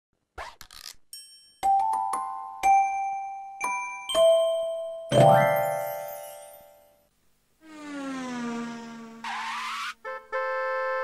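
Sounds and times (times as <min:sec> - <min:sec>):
bell-like mallet notes: 0:01.2 - 0:06.9
high sparkling chime: 0:02.7 - 0:07.0.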